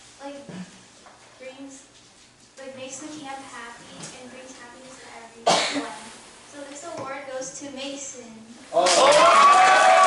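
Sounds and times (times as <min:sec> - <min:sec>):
cough into microphone: 0:05.4 - 0:06.0.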